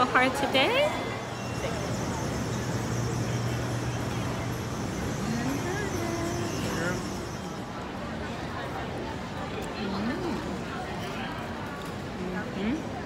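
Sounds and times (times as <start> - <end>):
street traffic engine hum: 0.0 - 13.0.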